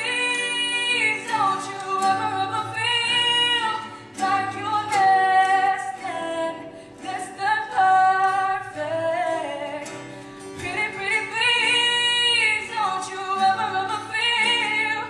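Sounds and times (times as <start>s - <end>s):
acoustic guitar: 0.0s - 15.0s
woman singing: 0.0s - 15.0s.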